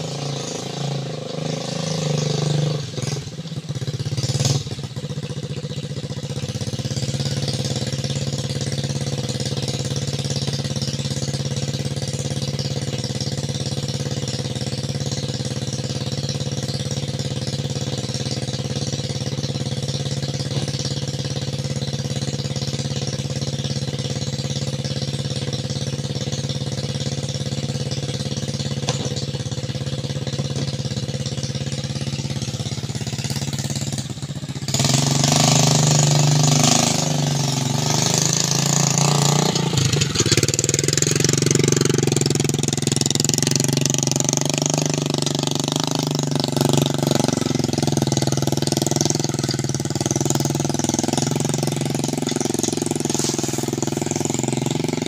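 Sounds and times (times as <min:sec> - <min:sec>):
motorcycle revving: 0:00.0 - 0:55.0
small motorcycle engine idling: 0:00.0 - 0:55.0.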